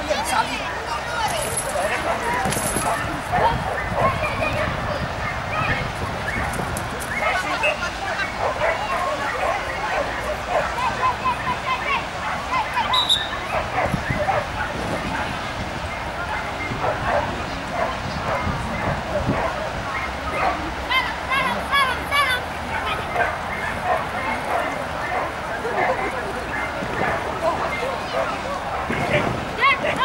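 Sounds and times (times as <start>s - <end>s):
dog barking in high yips: 8.4s - 15.3s.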